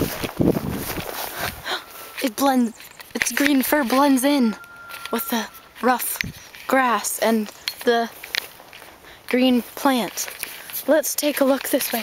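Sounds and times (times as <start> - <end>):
camera handling rumble: 0.0 - 1.6
footfalls in grass: 0.0 - 2.1
grass swishing against legs: 0.0 - 4.4.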